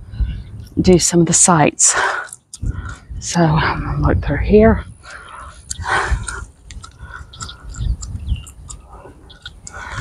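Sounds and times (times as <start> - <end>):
wind buffeting microphone: 0.0 - 10.0
scattered clicks: 5.6 - 9.8.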